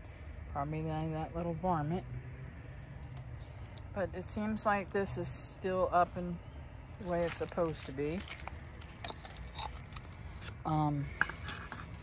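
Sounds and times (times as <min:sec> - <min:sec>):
dry leaves crackling: 0:06.9 - 0:12.0.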